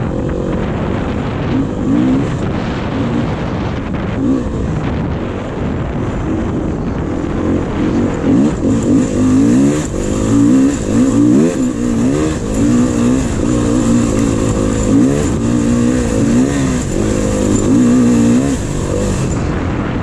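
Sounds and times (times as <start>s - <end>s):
dirt bike engine revving: 0.0s - 19.7s.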